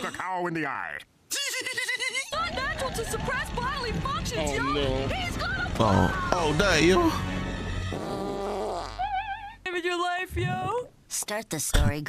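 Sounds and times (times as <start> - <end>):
cartoon fart sound effect: 7.9 - 9.1.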